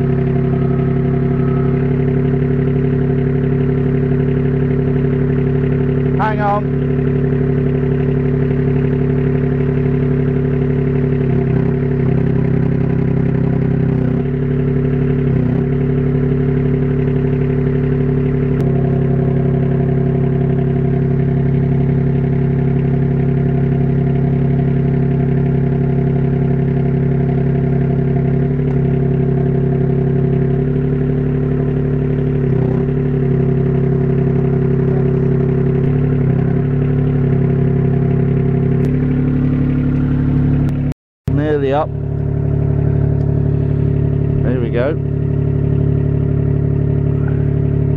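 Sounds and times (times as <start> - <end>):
forklift engine running under load: 0.0 - 47.9.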